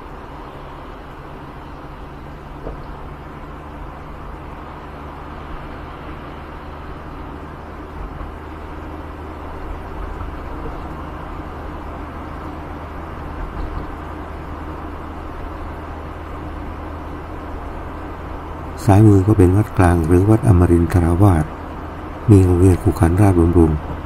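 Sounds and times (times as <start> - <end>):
car engine and road noise: 0.0 - 24.0.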